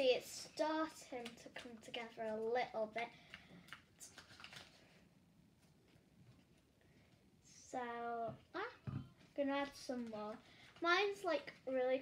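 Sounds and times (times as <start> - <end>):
child speaking: 0.0 - 3.1, 7.5 - 12.0.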